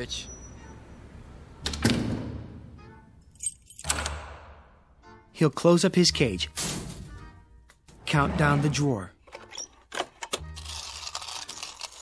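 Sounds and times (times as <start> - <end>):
heavy door closing with echoing boom: 1.6 - 2.7
keys jingling: 3.2 - 4.1.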